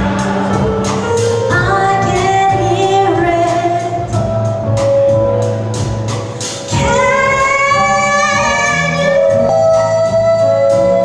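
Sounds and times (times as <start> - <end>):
jazz band playing: 0.0 - 11.0
woman singing: 1.5 - 4.2, 6.7 - 11.0.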